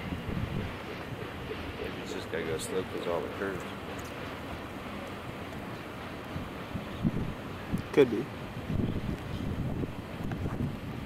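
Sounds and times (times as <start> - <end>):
wind thumping on microphone: 0.0 - 2.0, 6.3 - 11.0
distant freight train rolling: 0.0 - 11.0.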